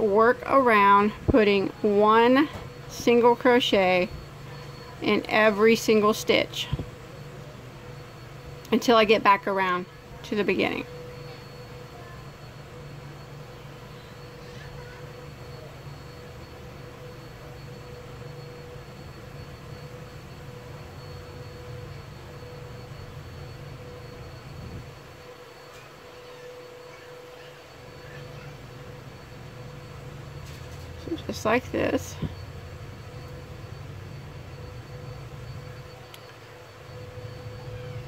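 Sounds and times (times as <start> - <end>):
faint high whine: 0.0 - 38.0
low room hum: 0.0 - 38.0.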